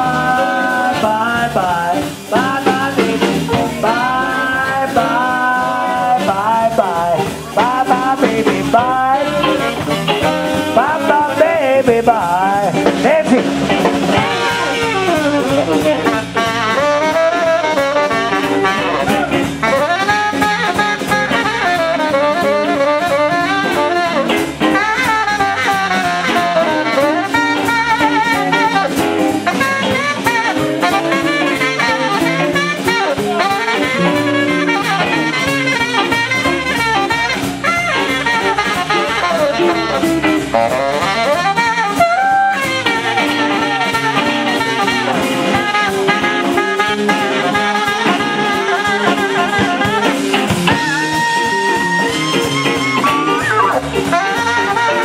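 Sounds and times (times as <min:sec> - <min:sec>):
bass and drums: 0:00.0 - 0:55.0
tenor saxophone blues solo: 0:00.0 - 0:55.0.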